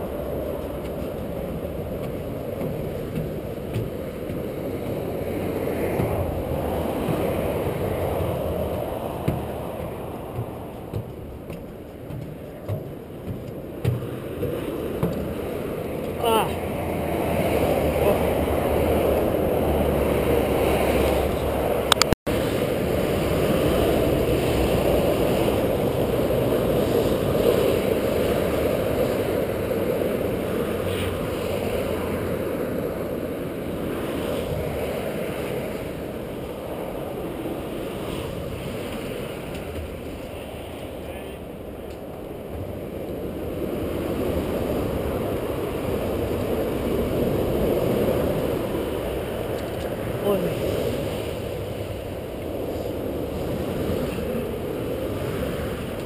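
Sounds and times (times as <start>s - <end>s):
motorway traffic passing: 0.0s - 56.0s
wind on microphone: 0.0s - 56.0s
sharp knocks: 8.1s - 15.4s.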